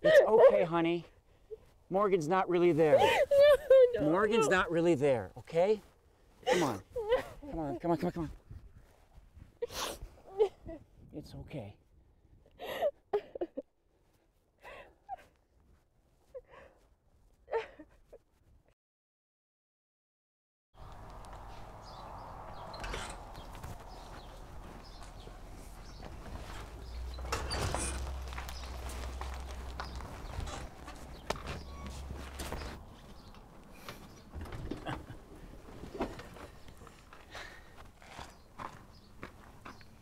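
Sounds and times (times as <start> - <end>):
footsteps on gravel: 20.8 - 33.3, 35.8 - 39.9.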